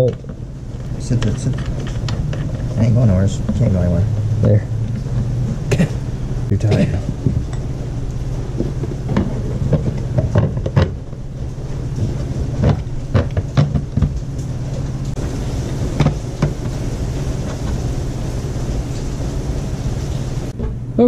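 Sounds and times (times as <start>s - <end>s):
steady low hum: 0.0s - 21.0s
knocks and clicks of hardware: 8.6s - 11.0s, 12.6s - 14.2s.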